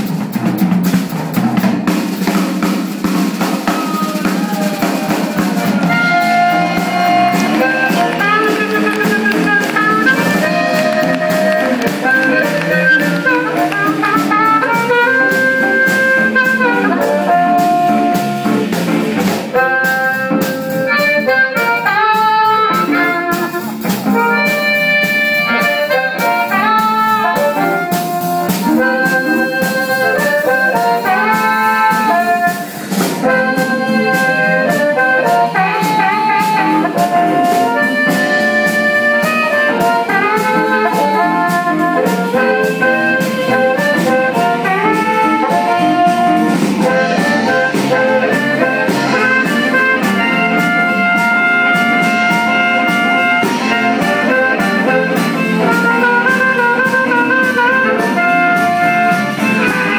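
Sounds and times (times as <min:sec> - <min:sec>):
drum kit: 0:00.0 - 0:59.9
electric guitar: 0:01.3 - 0:59.9
amplified harmonica: 0:03.5 - 0:59.9.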